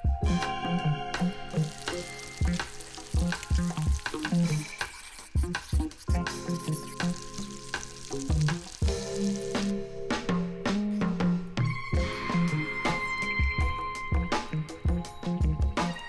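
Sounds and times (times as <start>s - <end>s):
background music with drums and bass: 0.0s - 16.0s
food sizzling in a frying pan: 1.2s - 9.9s.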